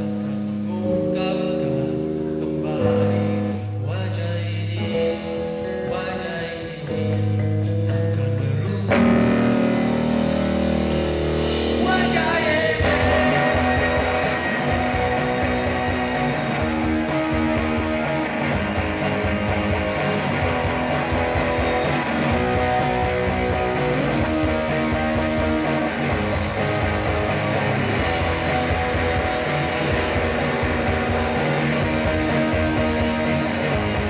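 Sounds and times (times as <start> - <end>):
person singing: 0.0 - 7.3, 7.9 - 9.6, 11.7 - 34.0
live rock band playing: 0.0 - 34.0.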